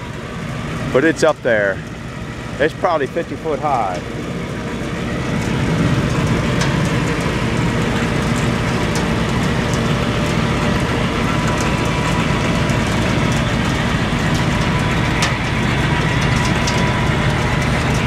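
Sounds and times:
machinery engine drone with rattle: 0.0 - 18.0.

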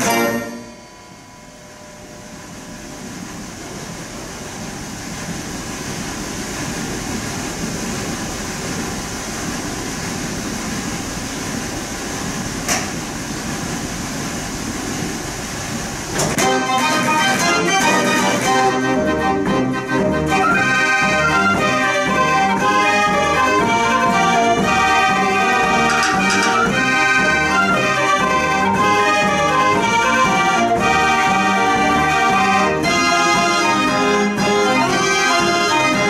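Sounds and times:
steady background noise: 0.0 - 36.0
dance organ music: 16.4 - 36.0.

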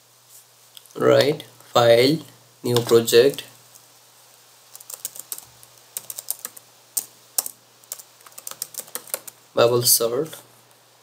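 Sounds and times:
computer keyboard typing: 2.7 - 3.4, 4.7 - 9.4.

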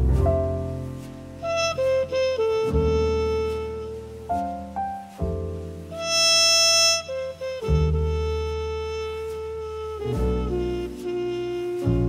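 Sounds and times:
bass line: 0.0 - 12.0
saxophone and brass horns: 1.4 - 4.6, 5.9 - 12.0.

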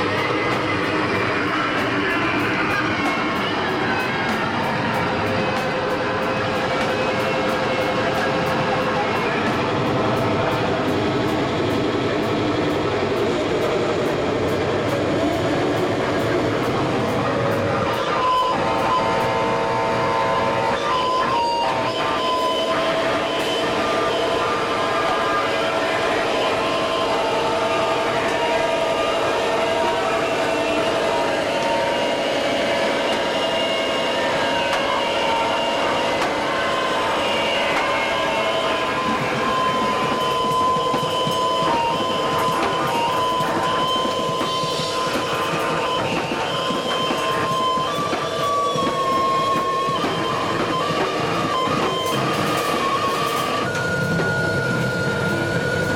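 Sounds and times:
amplifier feedback whine: 0.0 - 55.9
distorted electric guitar noise: 0.0 - 55.9
drums: 0.0 - 55.9.

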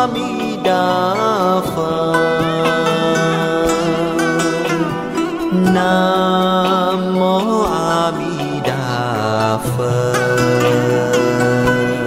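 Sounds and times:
plucked strings: 0.0 - 12.0
voice chanting long notes: 0.0 - 12.0.

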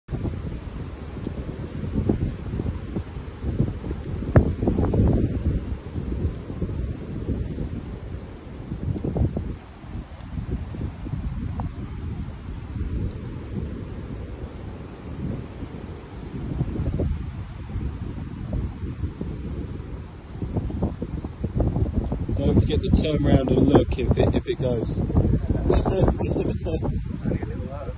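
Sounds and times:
wind buffeting microphone: 0.1 - 27.9.

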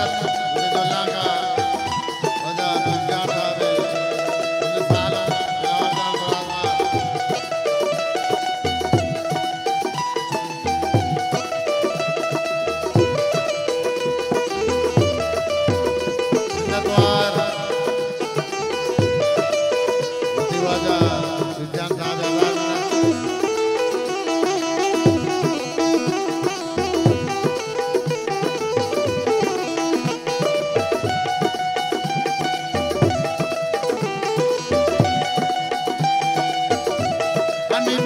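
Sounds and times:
hand drum rhythm: 0.0 - 38.0
harmonium melody: 0.0 - 38.0.

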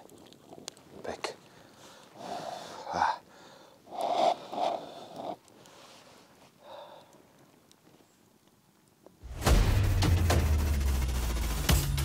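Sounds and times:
man sipping hot drink: 0.1 - 7.3.

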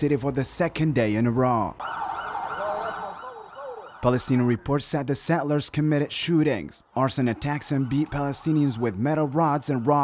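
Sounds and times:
emergency siren wailing: 1.8 - 4.8, 7.2 - 10.0.

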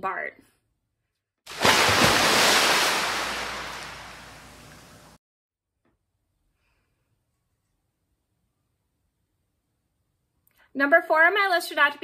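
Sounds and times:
rushing surf-like noise: 2.0 - 4.8.

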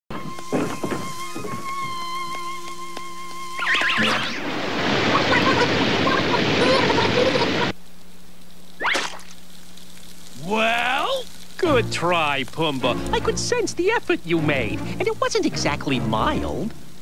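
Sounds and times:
high whistle of steam: 0.1 - 4.4
rush of falling water: 0.2 - 17.0.

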